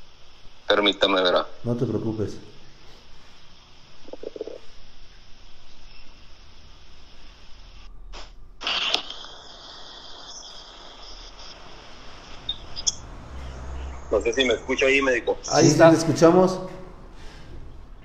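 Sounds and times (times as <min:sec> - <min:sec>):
phone line hiss and crackle: 0:00.0 - 0:01.6, 0:03.1 - 0:13.1
loud noise burst: 0:07.7 - 0:18.0
muffled murmur: 0:11.1 - 0:18.0.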